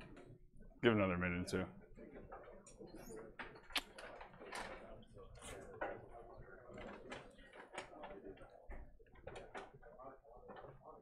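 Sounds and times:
faint background talk: 1.4s - 11.0s.

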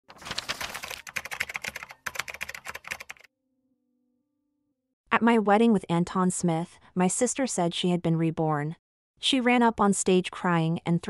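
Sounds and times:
keyboard typing clicks: 1.1s - 3.3s.

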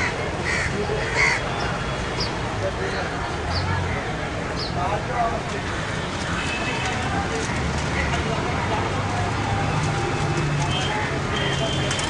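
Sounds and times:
crows cawing: 0.0s - 1.4s
low background murmur: 0.0s - 12.0s.

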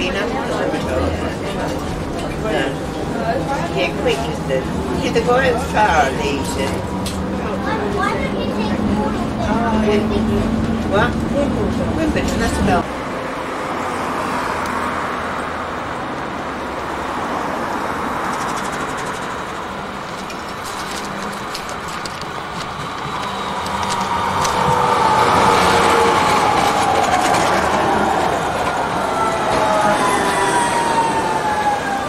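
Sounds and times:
tram passing with whine: 0.0s - 32.0s
car passing: 0.1s - 32.0s.

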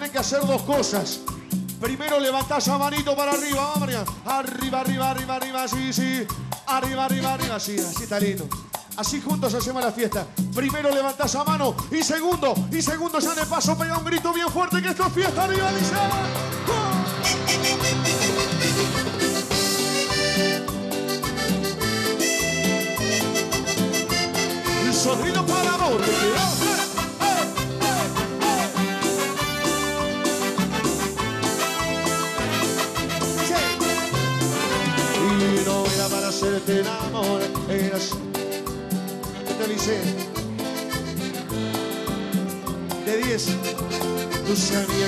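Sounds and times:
bass line: 0.0s - 45.0s
fast percussion pattern: 0.0s - 45.0s
live cumbia band music: 0.0s - 45.0s
held chords: 15.1s - 45.0s.

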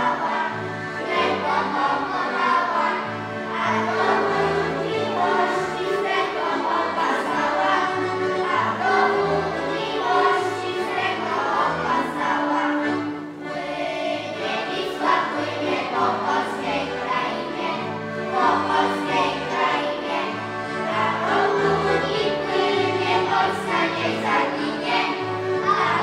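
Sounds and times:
accordions playing: 0.0s - 26.0s
children singing: 0.0s - 26.0s.

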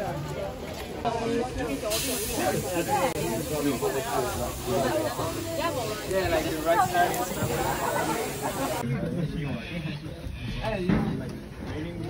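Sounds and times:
passengers chattering: 0.0s - 12.0s
steam locomotive hissing: 1.7s - 8.8s.

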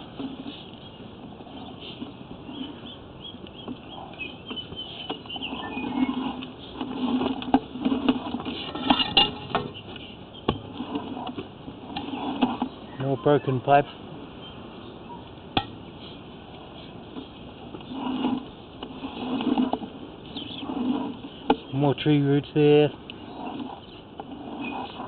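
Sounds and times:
camera clicking and scraping in pipe: 3.7s - 12.8s, 16.0s - 25.0s.

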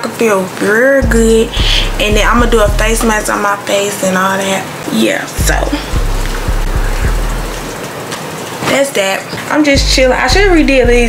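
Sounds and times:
kick drum hits: 1.0s - 3.3s, 5.4s - 7.8s
deep sustained bass note: 1.0s - 3.4s, 5.4s - 7.8s.

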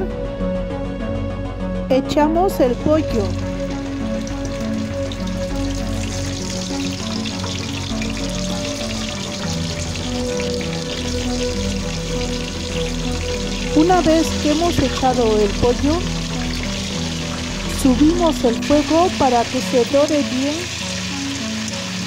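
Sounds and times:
background music: 0.0s - 22.0s
chicken sizzling in hot oil: 3.0s - 22.0s.

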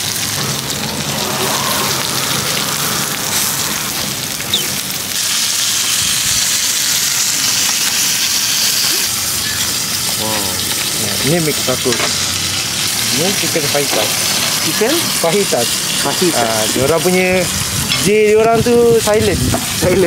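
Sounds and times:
food sizzling on a griddle: 0.0s - 20.0s.

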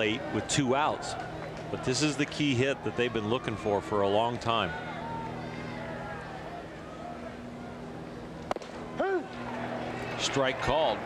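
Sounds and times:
crowd murmur: 0.0s - 11.0s
umpire shouting: 9.0s - 11.0s.

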